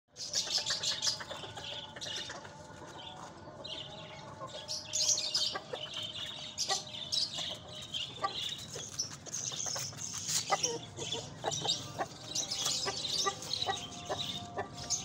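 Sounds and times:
birds chirping: 0.1s - 15.0s
hen clucking: 5.4s - 15.0s.

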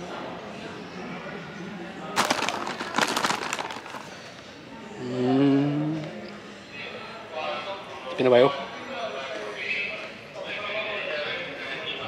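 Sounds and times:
low murmur of ambience: 0.0s - 12.0s
plastic snack bag crinkling: 2.2s - 4.5s.

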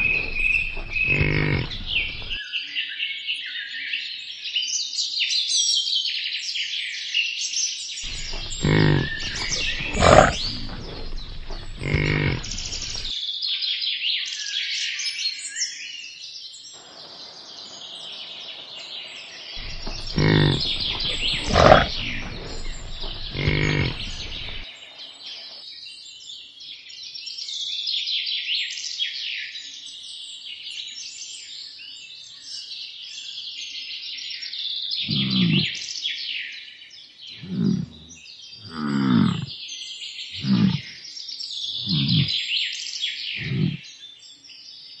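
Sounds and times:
birdsong: 0.0s - 2.4s, 8.0s - 13.1s, 16.8s - 25.6s, 34.9s - 36.3s, 37.2s - 44.8s
bison bellowing: 0.0s - 2.4s, 8.1s - 13.1s, 19.6s - 24.6s, 35.1s - 35.8s, 37.4s - 39.5s, 40.4s - 40.9s, 41.8s - 42.4s, 43.4s - 43.8s.

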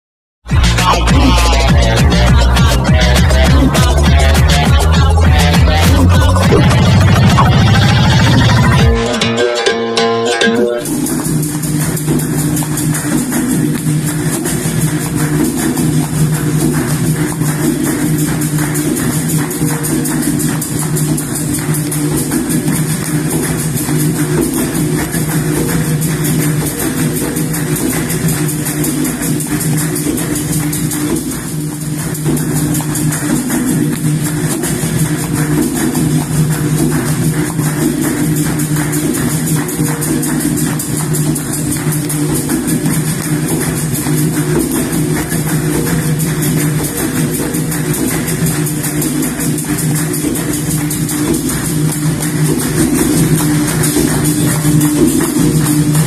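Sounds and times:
berimbaus playing: 0.5s - 11.3s
hand drum: 0.5s - 56.0s
tambourine jingles and hits: 10.8s - 56.0s.

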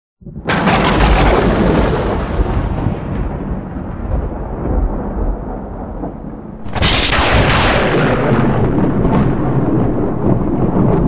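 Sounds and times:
long rolling rumble: 0.5s - 11.0s.

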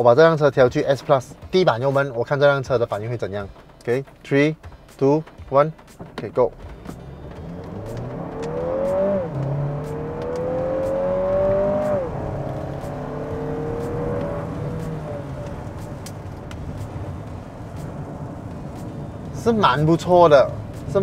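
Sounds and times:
car engine revving at full throttle: 6.0s - 21.0s.

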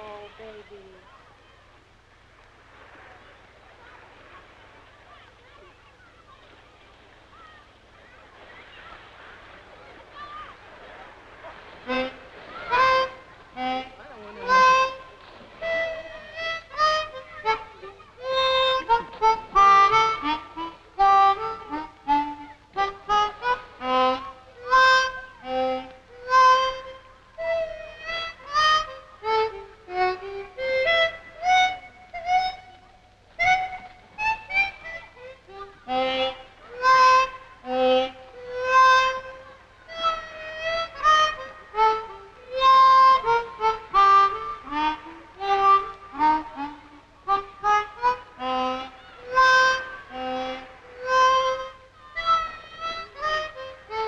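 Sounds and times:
solo harmonica melody: 11.9s - 54.0s.

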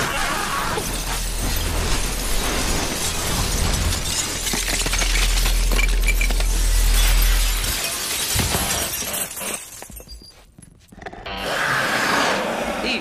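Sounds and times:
glass window shattering: 0.0s - 9.8s
glass shards clinking: 0.5s - 10.4s.

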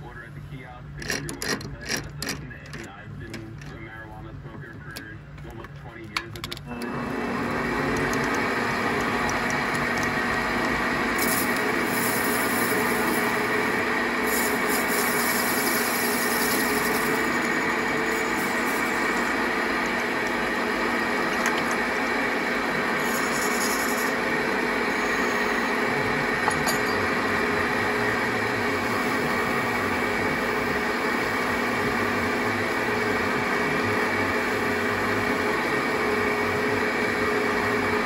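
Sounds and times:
metal lathe running: 6.5s - 38.0s
cutting tool hiss: 11.1s - 19.6s, 22.8s - 26.2s.

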